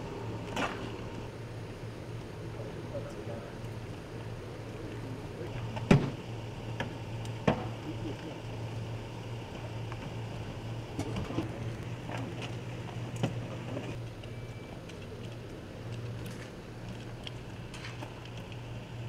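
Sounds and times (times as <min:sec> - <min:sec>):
steady low hum: 0:00.0 - 0:19.0.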